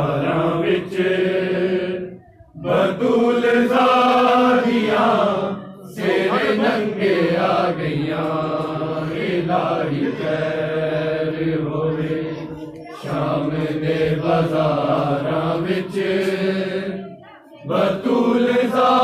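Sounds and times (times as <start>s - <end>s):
male voices chanting lament: 0.0s - 19.0s.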